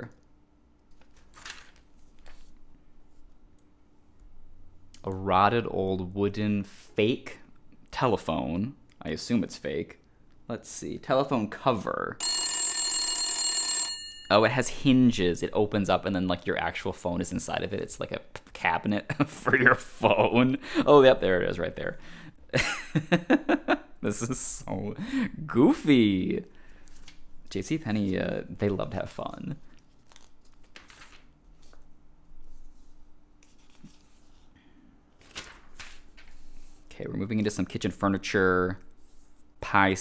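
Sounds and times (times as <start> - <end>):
paper pages rustling: 0.9 - 3.3, 26.8 - 27.3, 29.6 - 34.5, 35.1 - 36.9
telephone bell ringing: 12.2 - 14.5.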